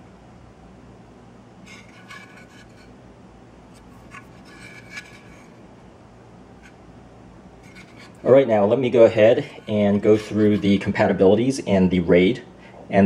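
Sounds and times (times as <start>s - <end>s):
faint low hum: 0.0s - 13.0s
hands rubbing metal cover: 1.6s - 3.0s, 3.7s - 5.6s, 7.6s - 11.1s.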